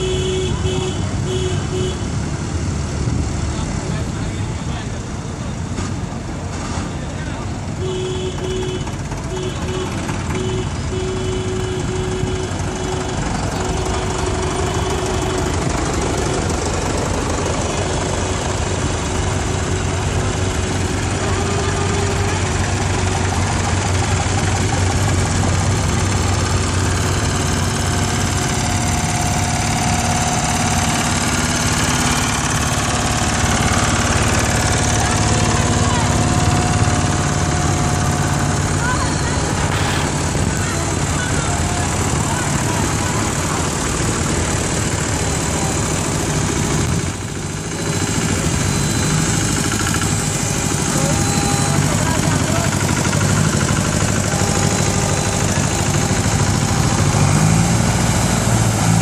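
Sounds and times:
tractor engines passing: 0:00.0 - 0:59.0
broken tone: 0:17.4 - 0:59.0.

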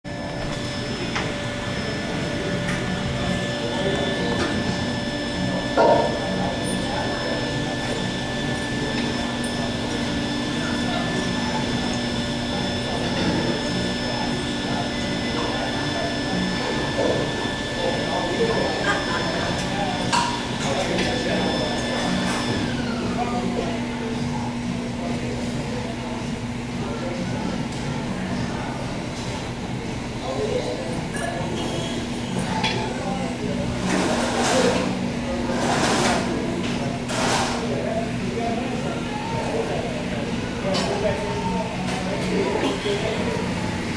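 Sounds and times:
voices talking: 0:00.1 - 0:43.9.

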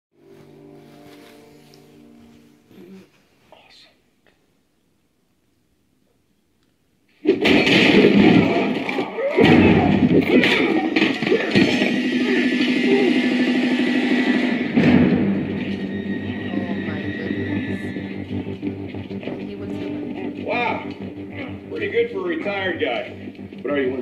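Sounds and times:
film music with held tones: 0:00.1 - 0:24.0
man speaking: 0:19.8 - 0:24.0.

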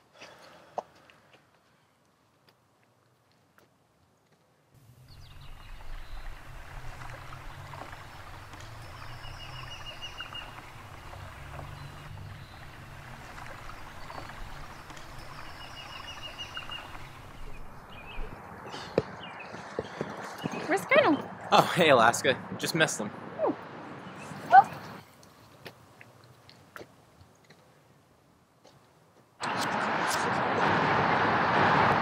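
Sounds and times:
small birds chirping: 0:04.9 - 0:21.4
bird trill: 0:05.1 - 0:18.3.

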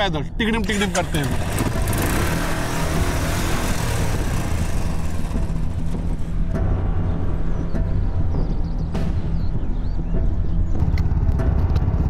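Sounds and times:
motorcycle engine pulling away: 0:00.6 - 0:06.7.

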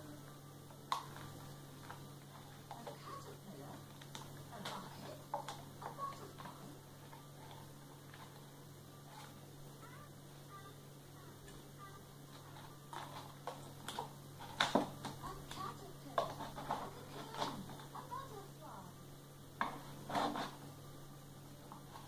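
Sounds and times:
crayons clattering against plastic cup: 0:12.3 - 0:18.3.

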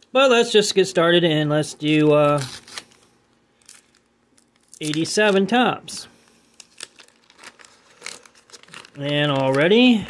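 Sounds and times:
wax paper wrapper crinkling: 0:01.4 - 0:10.0
paper wrapper tearing: 0:01.6 - 0:05.6, 0:06.5 - 0:10.0.

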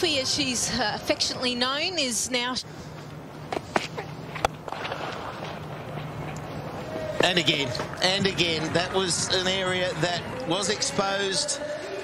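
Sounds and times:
low hum of open-air ground: 0:00.0 - 0:12.0.

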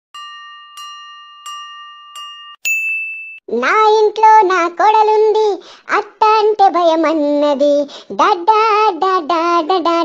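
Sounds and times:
high bright ding: 0:00.2 - 0:03.4
high-pitched cartoon voice singing: 0:03.5 - 0:10.0.

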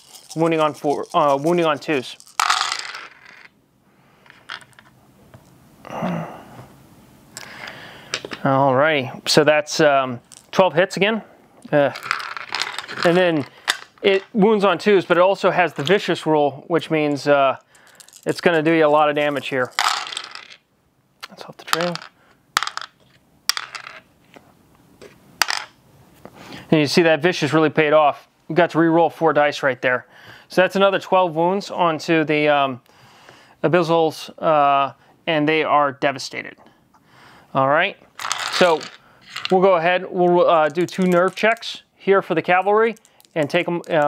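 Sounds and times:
dice clicking: 0:00.0 - 0:03.5, 0:12.0 - 0:14.3, 0:19.7 - 0:20.6, 0:21.6 - 0:24.0, 0:38.2 - 0:39.6, 0:40.6 - 0:41.7, 0:42.9 - 0:44.0
dice rattling in wooden tray: 0:00.0 - 0:03.5, 0:11.9 - 0:14.4, 0:17.8 - 0:20.6, 0:21.6 - 0:24.0, 0:25.4 - 0:25.7, 0:38.2 - 0:39.7, 0:40.3 - 0:41.8, 0:42.6 - 0:44.0.

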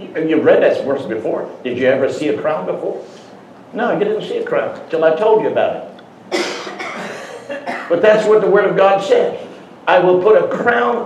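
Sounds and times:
man coughing: 0:06.3 - 0:08.0.

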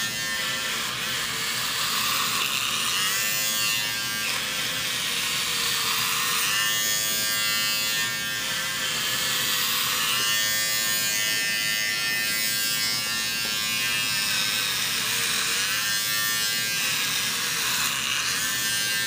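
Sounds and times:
electric hair clippers buzzing: 0:00.0 - 0:19.0.

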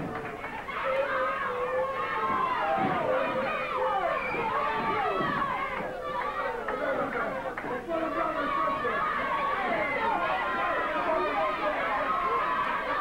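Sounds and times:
audience talking and shouting: 0:00.0 - 0:13.0.

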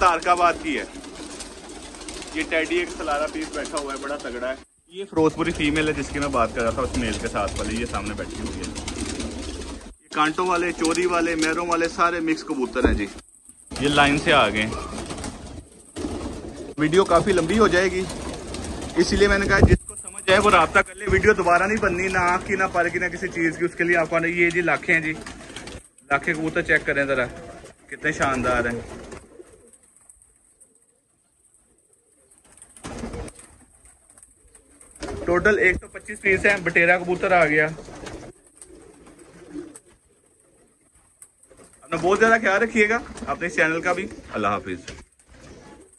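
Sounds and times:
pigeons cooing: 0:00.0 - 0:45.9.

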